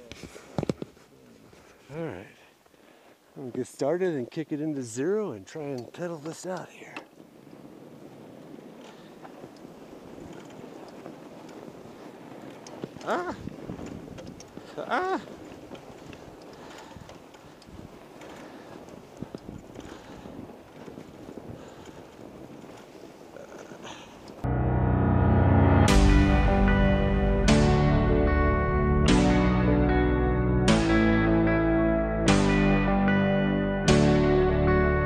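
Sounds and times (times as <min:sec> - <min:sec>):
bike tires crunching through snow: 0:00.0 - 0:24.5
wind on microphone: 0:07.1 - 0:24.5
rising and falling tone: 0:24.4 - 0:35.0.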